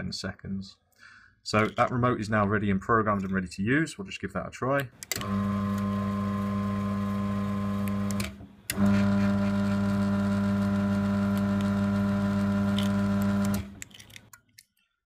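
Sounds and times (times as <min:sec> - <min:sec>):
garage door opener motor humming: 0:05.0 - 0:13.8.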